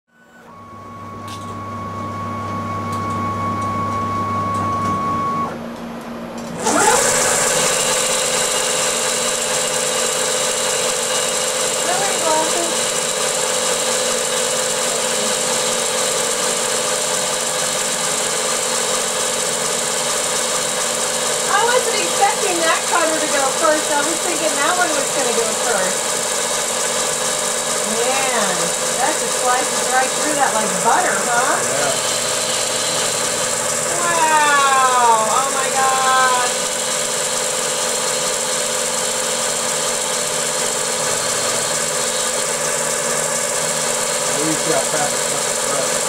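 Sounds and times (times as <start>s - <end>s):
servo motor whine: 0.1s - 5.6s, 6.4s - 46.0s
steady hum with held tone: 0.1s - 6.6s, 27.8s - 36.6s.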